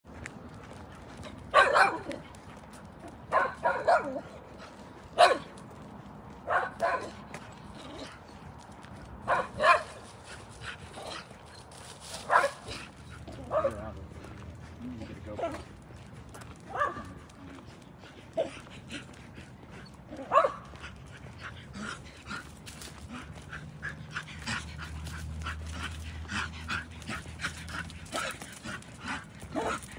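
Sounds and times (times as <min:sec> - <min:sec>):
dog barking: 0:01.5 - 0:02.2, 0:03.3 - 0:04.2, 0:05.2 - 0:05.5, 0:06.5 - 0:07.2, 0:09.3 - 0:10.0, 0:12.3 - 0:12.7, 0:13.4 - 0:13.9, 0:16.7 - 0:17.2, 0:20.2 - 0:20.6, 0:29.6 - 0:29.8.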